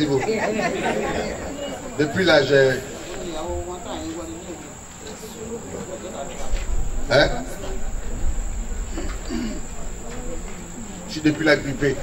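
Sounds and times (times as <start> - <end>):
crickets trilling: 0.0 - 12.0
faint murmur of voice: 0.0 - 12.0
low electrical hum: 0.0 - 12.0.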